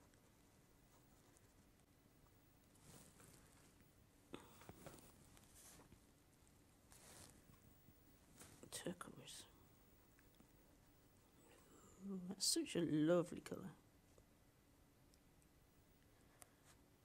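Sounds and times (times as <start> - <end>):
soft rustles: 0.0 - 11.7
faint whispered voice: 8.4 - 9.7.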